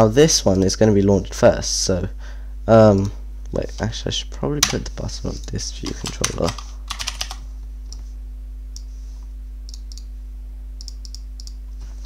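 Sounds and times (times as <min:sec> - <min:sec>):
steady low hum: 0:00.0 - 0:12.0
keyboard keystrokes: 0:05.9 - 0:07.4.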